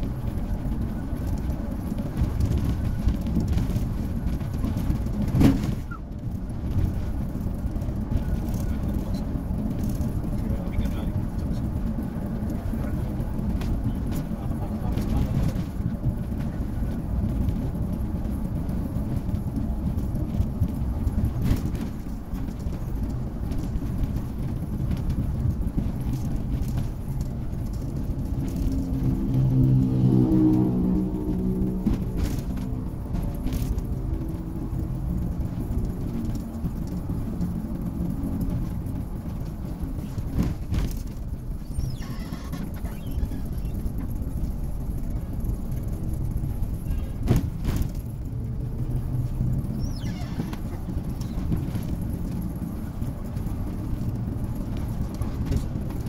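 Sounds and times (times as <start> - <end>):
bus engine and tyres rumbling: 0.0 - 56.0.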